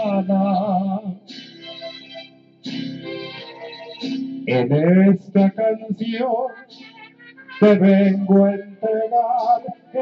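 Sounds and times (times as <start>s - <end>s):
strummed guitar chords: 0.0s - 10.0s.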